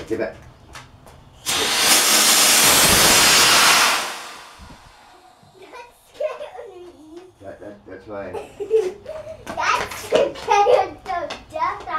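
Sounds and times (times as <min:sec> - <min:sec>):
rocket motor hissing: 0:01.4 - 0:05.7.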